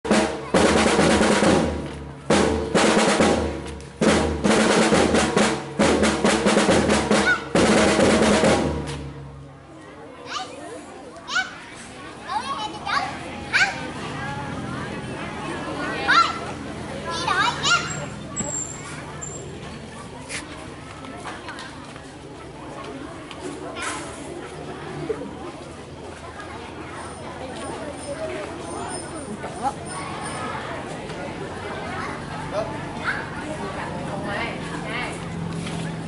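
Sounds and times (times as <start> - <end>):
marching drums playing: 0.0 - 9.4
children's voices calling: 6.4 - 8.3, 9.4 - 36.0.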